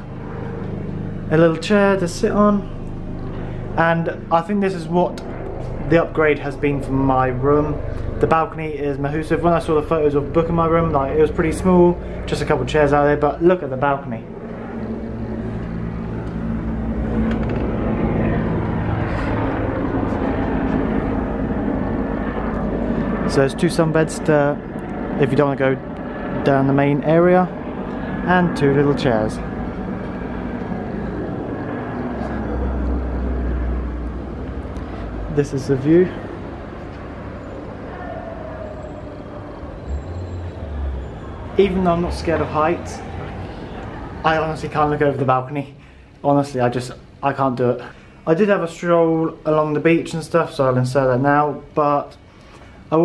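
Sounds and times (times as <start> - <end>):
low rumble: 0.0 - 23.8, 27.6 - 45.2
steady engine drone: 0.0 - 53.0
street traffic hum: 0.0 - 53.0.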